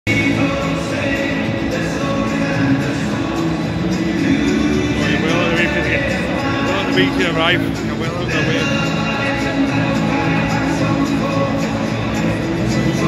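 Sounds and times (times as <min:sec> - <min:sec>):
music over public-address system: 0:00.1 - 0:13.0
wavering sung voice: 0:00.1 - 0:13.0.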